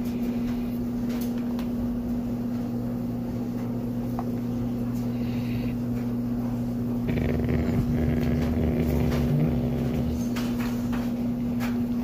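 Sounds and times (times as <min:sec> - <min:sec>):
steady electrical hum: 0:00.0 - 0:12.0
dog growling low: 0:07.0 - 0:10.8.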